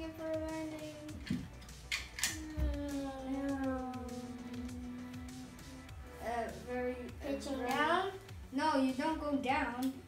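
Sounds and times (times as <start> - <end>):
child imitating engines: 2.2 - 6.2.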